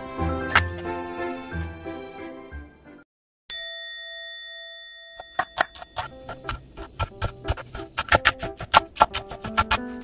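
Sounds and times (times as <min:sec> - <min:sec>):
background music: 0:00.0 - 0:03.0, 0:05.9 - 0:10.0
bell-like ding: 0:03.5 - 0:06.0
knife chopping on wooden board: 0:05.4 - 0:10.0.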